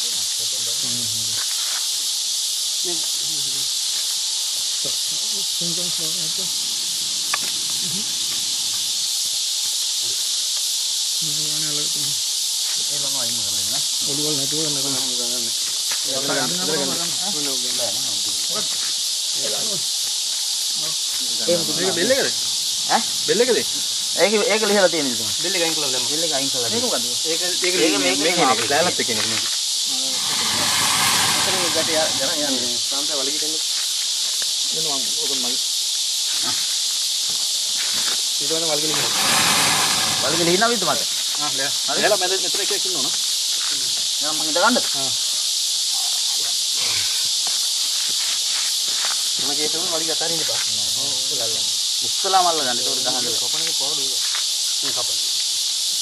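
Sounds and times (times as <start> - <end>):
high-pitched insect chorus: 0.0 - 56.0
men talking low: 21.4 - 33.0, 38.5 - 43.1.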